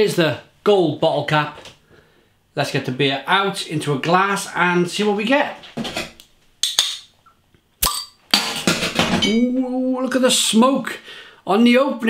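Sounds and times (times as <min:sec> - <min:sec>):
bottle cap popping off: 0:07.8 - 0:08.6.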